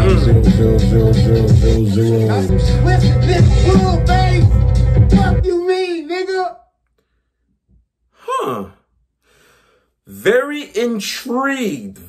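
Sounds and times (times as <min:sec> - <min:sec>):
man sighing: 0:08.1 - 0:09.8
soft breath out: 0:09.2 - 0:10.0.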